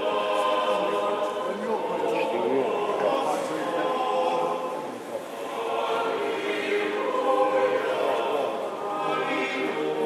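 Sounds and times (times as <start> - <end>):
choir chanting sustained notes: 0.0 - 10.0.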